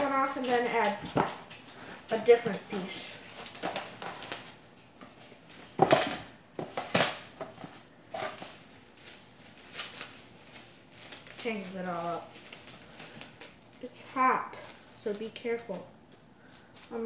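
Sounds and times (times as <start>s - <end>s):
cling wrap crinkling: 0.0s - 17.0s.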